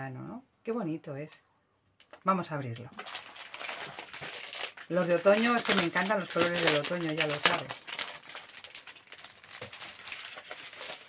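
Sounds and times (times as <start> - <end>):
plastic packaging crinkling: 2.8 - 11.0.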